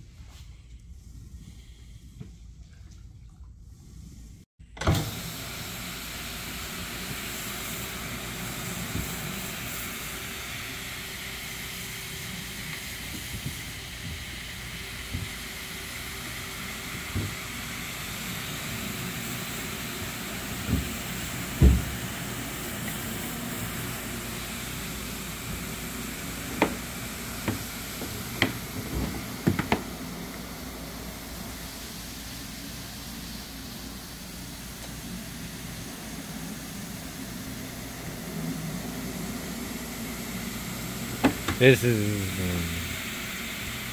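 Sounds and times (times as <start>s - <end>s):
floor scrubbing machine running: 5.0s - 43.9s.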